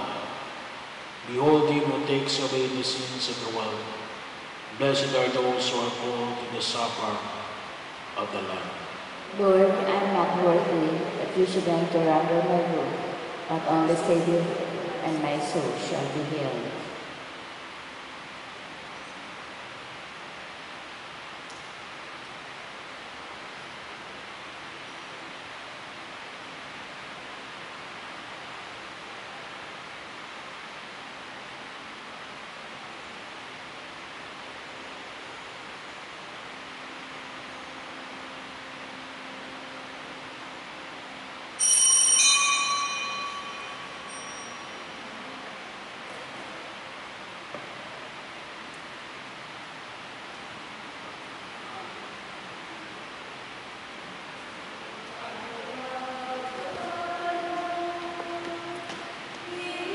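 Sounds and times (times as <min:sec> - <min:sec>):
room noise hiss: 0:00.0 - 0:59.9
small bell ringing: 0:41.6 - 0:45.1.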